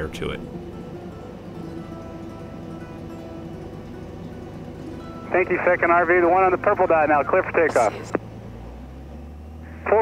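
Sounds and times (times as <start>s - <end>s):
aircraft piston engine idling: 0.0s - 8.2s
radio calls: 5.3s - 8.2s, 9.7s - 10.0s.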